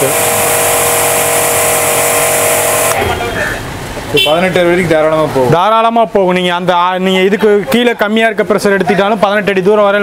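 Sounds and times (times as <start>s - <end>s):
pressure washer motor whine: 0.0s - 3.0s
water jet hissing: 0.0s - 3.0s.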